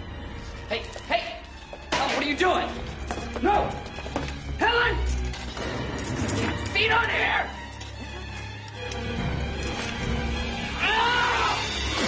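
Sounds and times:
film score music: 0.0 - 12.0.

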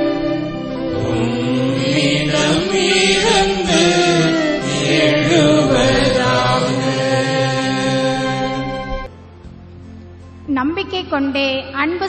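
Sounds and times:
gliding melody line: 0.0 - 9.1
held accompaniment notes: 0.0 - 10.6.

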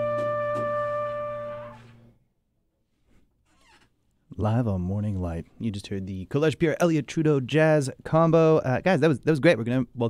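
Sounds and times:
man's voice: 4.3 - 10.0.

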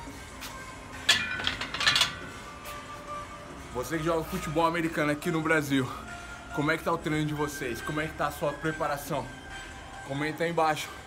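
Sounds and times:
bar and plates rattling: 1.1 - 2.3.

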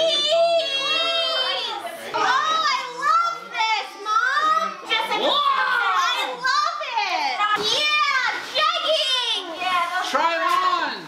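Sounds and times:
excited voices exclaiming: 0.0 - 9.6.

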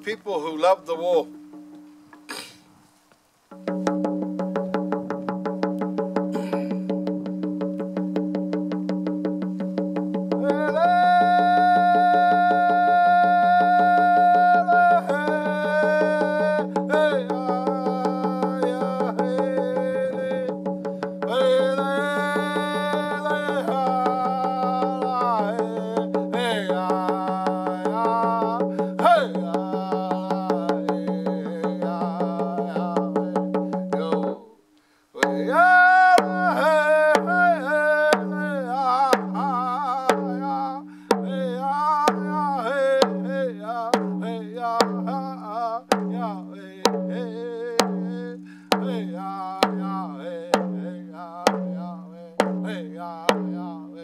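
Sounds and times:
frame drum beats: 1.0 - 2.3, 3.5 - 34.5, 35.2 - 54.0
man singing: 10.2 - 54.0.

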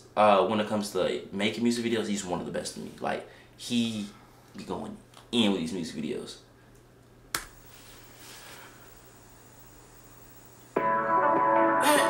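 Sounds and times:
faint room hiss: 0.0 - 12.0
music: 10.8 - 12.0.

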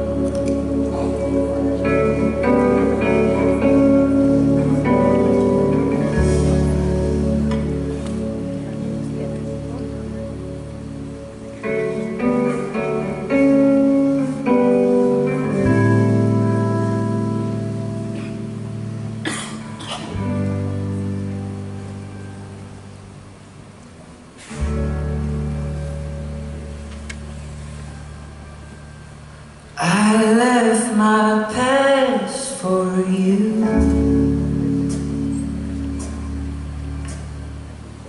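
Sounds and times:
guitar chords: 0.0 - 38.0
live band instrumental: 0.0 - 38.0.

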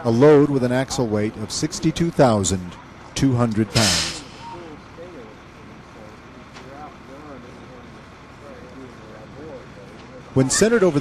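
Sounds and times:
faint voices talking: 0.0 - 11.0
truck engine running: 0.0 - 11.0.

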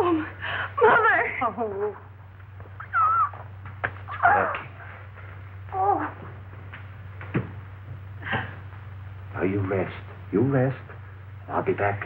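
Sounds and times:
low film soundtrack hum: 0.0 - 12.0.

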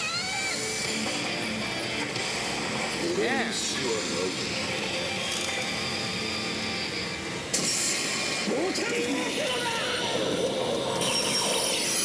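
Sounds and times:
pachinko machine music and effects: 0.0 - 12.0.

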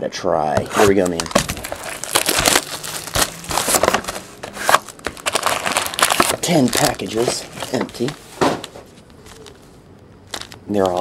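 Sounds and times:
box wrapper crinkling and tearing: 0.7 - 9.6, 10.2 - 11.0.

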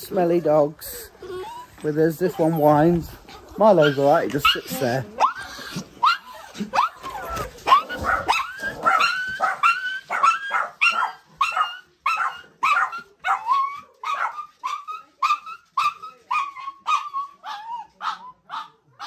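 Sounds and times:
small dog barking: 5.2 - 19.0.

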